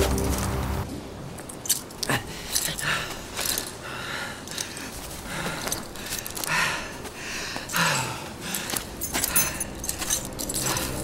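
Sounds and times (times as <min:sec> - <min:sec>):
metal climbing gear jangling: 0:01.4 - 0:11.0.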